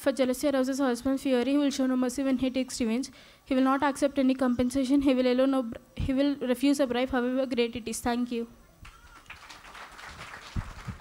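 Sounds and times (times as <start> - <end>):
audience applauding: 8.8 - 11.0.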